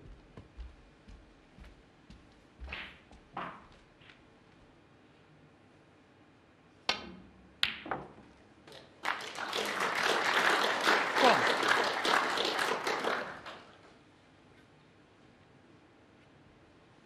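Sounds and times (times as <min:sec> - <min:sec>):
audience applause: 0:09.0 - 0:13.9.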